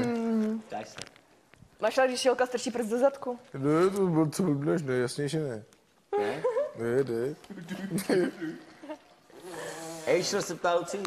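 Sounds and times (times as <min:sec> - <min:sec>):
woman laughing: 0:06.1 - 0:06.8, 0:07.6 - 0:09.1.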